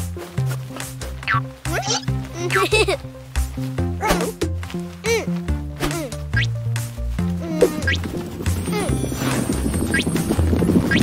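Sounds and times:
light cartoon background music: 0.0 - 11.0.

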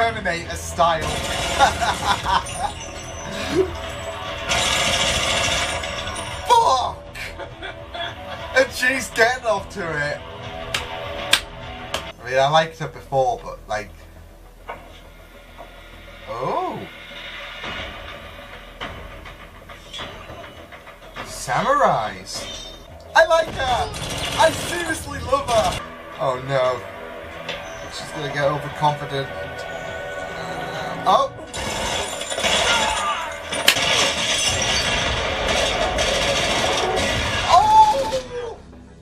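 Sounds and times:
faint music: 0.0 - 39.0
low rumbling ambience: 0.0 - 39.0
continuous crashing noise: 0.1 - 9.4, 16.9 - 25.9, 31.4 - 38.0
sharp crack: 10.7 - 12.1, 31.5 - 38.0.

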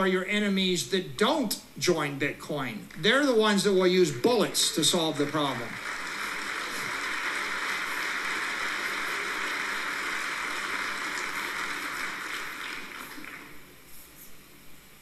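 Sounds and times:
audience applauding: 4.7 - 13.7.

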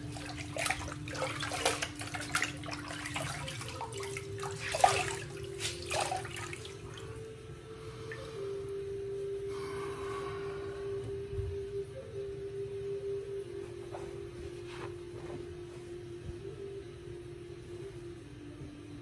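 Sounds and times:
water splashing in a sink: 0.0 - 7.2
soft background music: 0.0 - 19.0.

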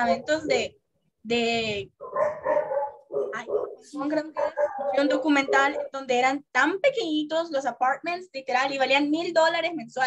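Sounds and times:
dog barking: 2.0 - 6.1.

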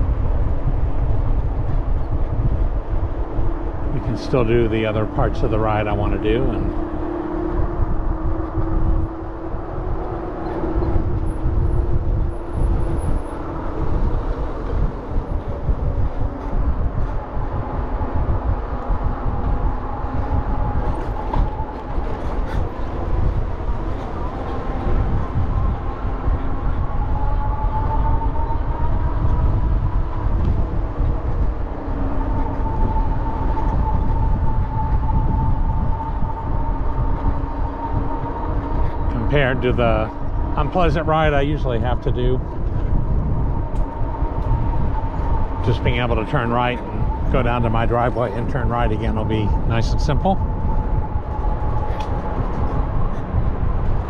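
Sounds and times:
bicycle tyre noise on pavement: 0.0 - 54.0
wind buffeting microphone: 0.0 - 54.0.

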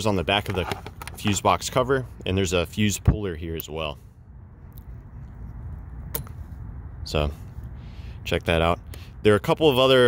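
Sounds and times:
low steady rumble: 0.0 - 10.0.

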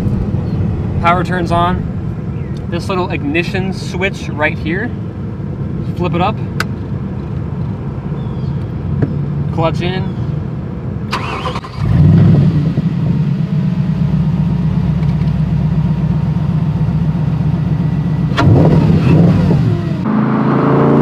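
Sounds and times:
car engine starting and idling: 0.0 - 21.0
engine revving: 11.1 - 13.9, 18.2 - 21.0.

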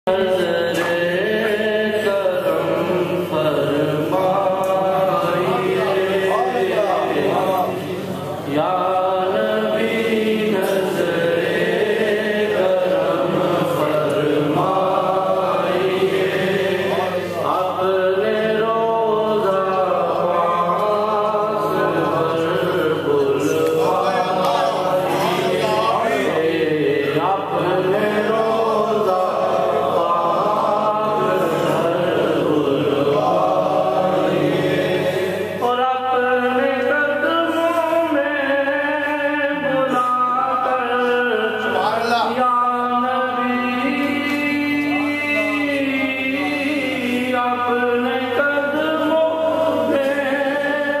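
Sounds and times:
man chanting devotional poem: 0.0 - 51.0.

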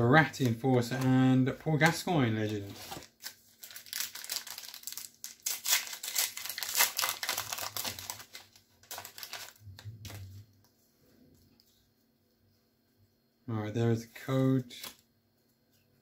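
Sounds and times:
card pack wrapper crinkling: 1.9 - 10.3.

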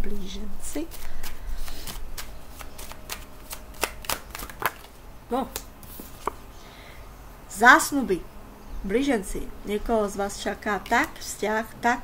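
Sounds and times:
cards being shuffled: 0.6 - 6.4.

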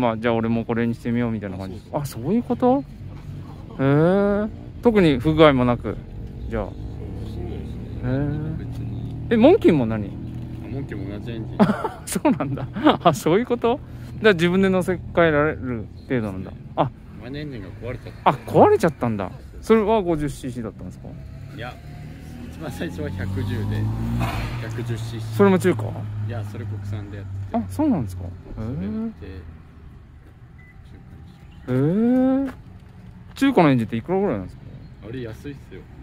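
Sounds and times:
people talking: 0.0 - 2.8, 3.6 - 21.8, 22.5 - 29.5, 31.7 - 32.6, 33.4 - 35.8.

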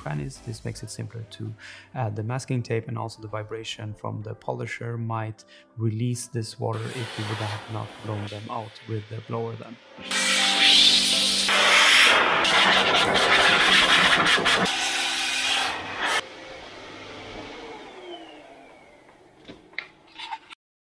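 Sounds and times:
blower rushing air with hum: 10.1 - 19.4.

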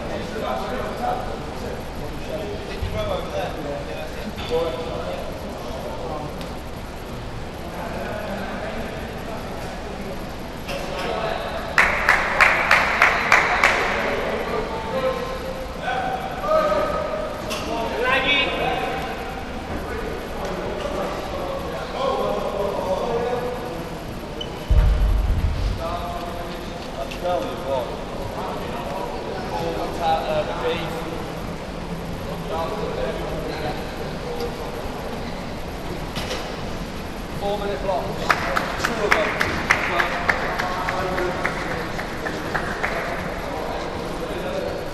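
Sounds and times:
men's voices chattering: 0.0 - 44.9
low thud: 24.7 - 26.2.

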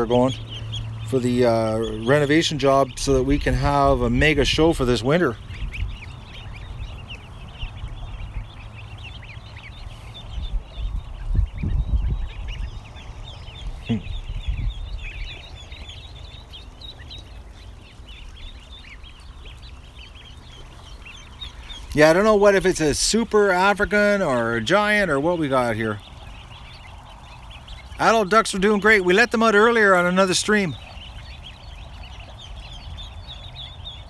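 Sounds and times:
low rumbling on microphone: 0.0 - 28.8
ducklings and goslings peeping: 0.0 - 34.0.

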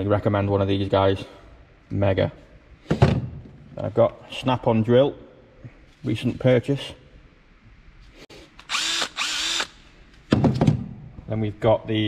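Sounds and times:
drill click: 8.6 - 9.8
cordless drill motor whine: 8.7 - 9.8.

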